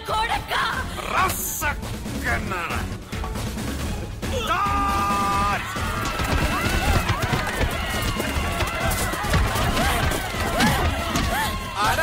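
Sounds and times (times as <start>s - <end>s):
film background music: 0.0s - 12.0s
many voices shouting: 4.3s - 12.0s.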